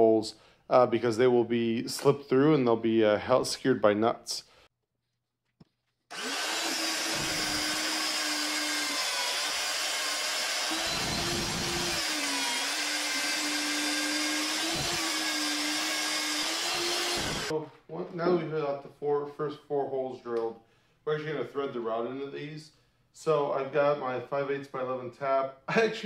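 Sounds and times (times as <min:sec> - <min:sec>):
magnetic drill cutting steel: 0:06.1 - 0:17.5.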